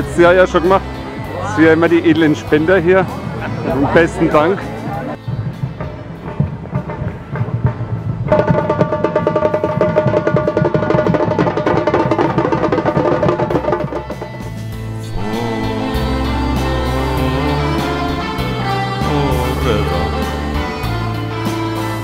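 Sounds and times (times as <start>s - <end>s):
samba drum band: 5.3s - 14.6s
melodic music: 15.0s - 22.0s.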